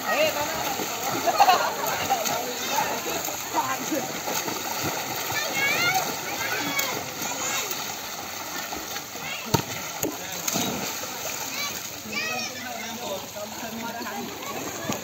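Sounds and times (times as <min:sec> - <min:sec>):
people chattering and shouting: 0:00.0 - 0:15.0
water splashing from swimming: 0:00.0 - 0:15.0.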